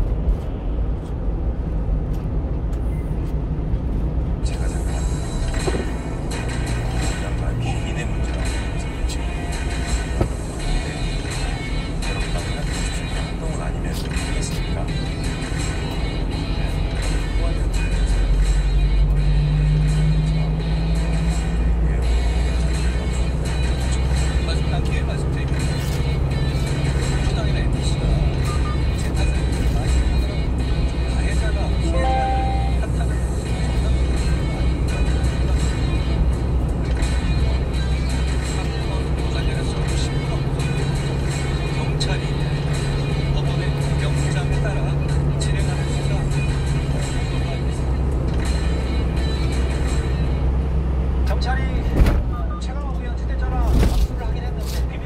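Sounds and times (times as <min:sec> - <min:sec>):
road and engine drone: 0:00.0 - 0:55.0
car radio music: 0:31.7 - 0:33.0.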